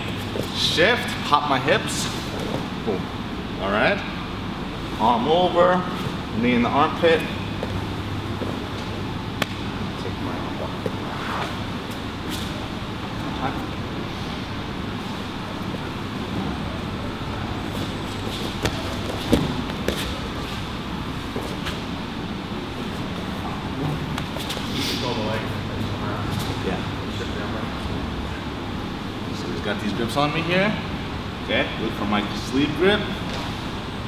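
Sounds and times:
steady room hum: 0:00.0 - 0:34.0.

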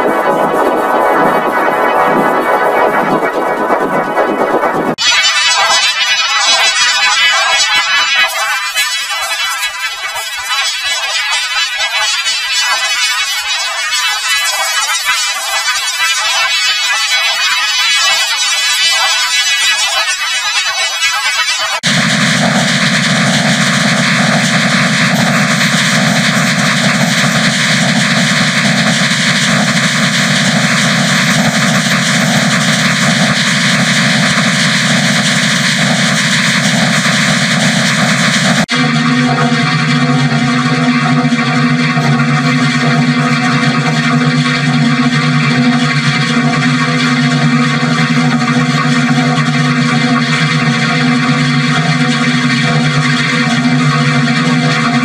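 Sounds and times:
harsh buzzing drone: 0:00.0 - 0:06.3, 0:21.7 - 0:55.0
distorted electronic music: 0:00.0 - 0:55.0.

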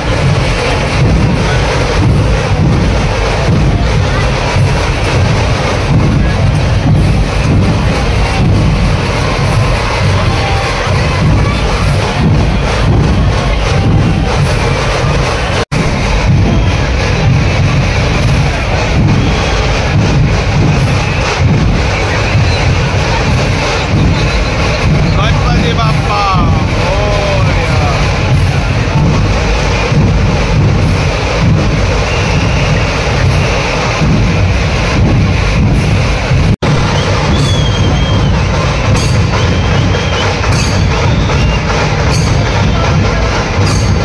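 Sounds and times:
large crowd noise: 0:00.0 - 0:44.0
procession music with heavy drumming: 0:00.0 - 0:44.0.

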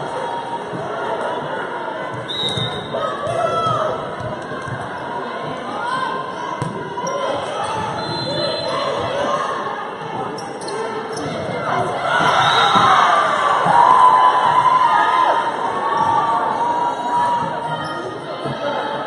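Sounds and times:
crowd noise: 0:00.0 - 0:19.0
players calling and shouting: 0:00.0 - 0:19.0.

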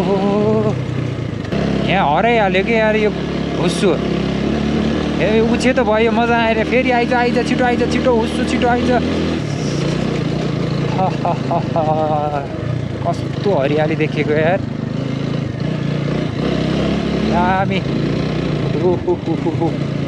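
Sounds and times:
motorcycle engine running: 0:00.0 - 0:20.0.

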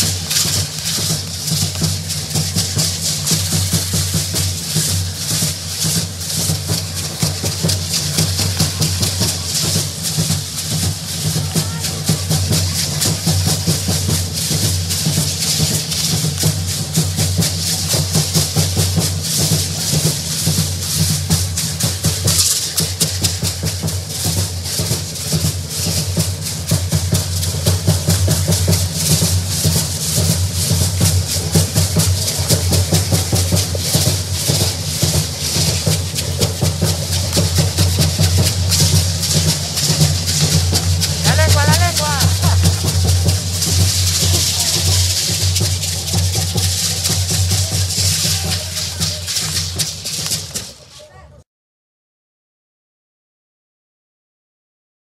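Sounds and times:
drumming: 0:00.0 - 0:50.9
hand rattles shaken rhythmically: 0:00.0 - 0:50.9.

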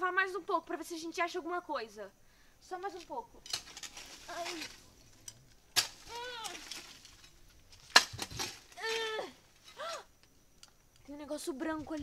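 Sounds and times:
hoe striking hard ground: 0:05.7 - 0:08.8
person's strained cries: 0:06.1 - 0:06.7, 0:08.7 - 0:10.1.

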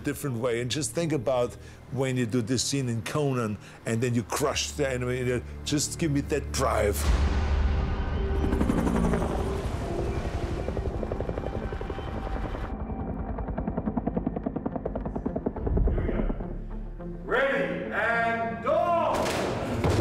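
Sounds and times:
dramatic film score music: 0:03.6 - 0:20.0
rapid even pulsing: 0:07.6 - 0:16.9.

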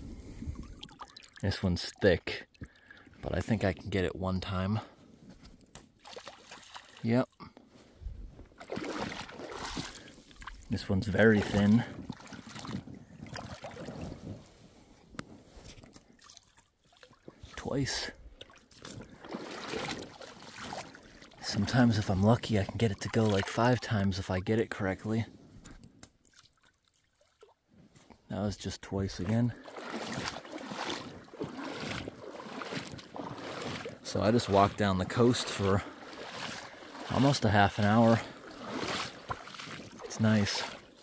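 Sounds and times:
water sloshing and splashing: 0:00.0 - 0:04.6, 0:05.2 - 0:24.5, 0:25.4 - 0:27.7, 0:28.8 - 0:41.0.

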